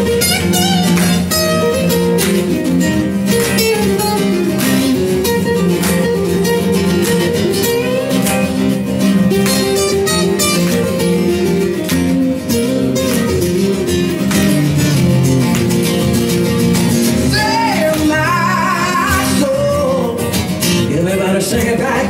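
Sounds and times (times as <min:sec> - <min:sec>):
acoustic guitars playing: 0:00.0 - 0:22.0.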